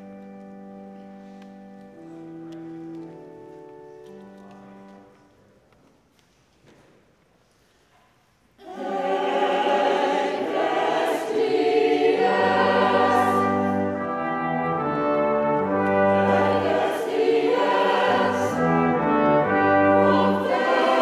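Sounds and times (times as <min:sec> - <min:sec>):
choir singing: 0:08.6 - 0:21.0
pipe organ chords: 0:10.6 - 0:21.0.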